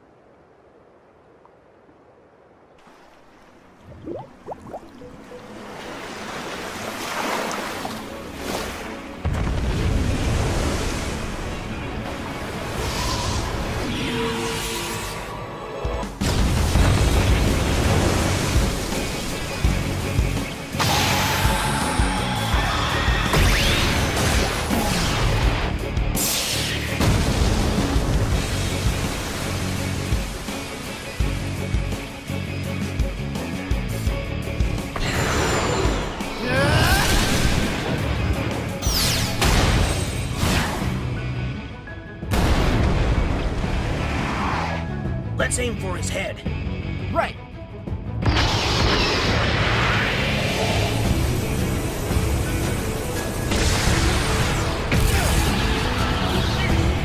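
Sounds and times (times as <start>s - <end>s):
dramatic action music: 8.4s - 57.0s
crashing and booming impacts: 42.3s - 44.2s.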